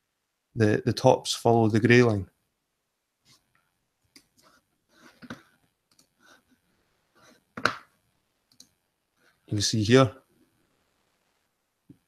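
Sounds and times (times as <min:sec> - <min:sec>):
computer mouse clicks: 0:04.1 - 0:04.5, 0:05.1 - 0:06.2, 0:08.5 - 0:08.8.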